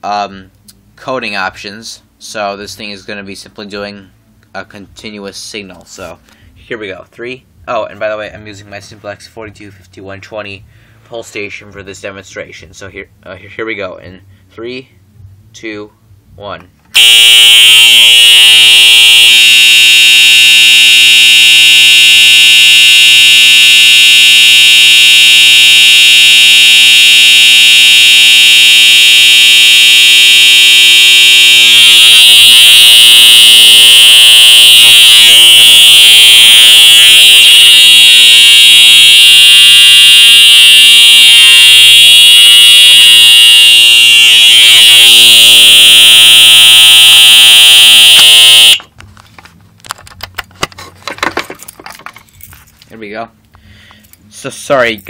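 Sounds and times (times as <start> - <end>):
fire alarm horn buzzing: 17.0 - 48.9.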